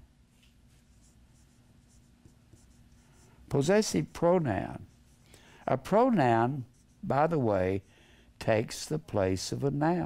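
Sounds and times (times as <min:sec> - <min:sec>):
faint steady low hum: 0:00.0 - 0:10.0
marker writing on a whiteboard: 0:00.7 - 0:07.9.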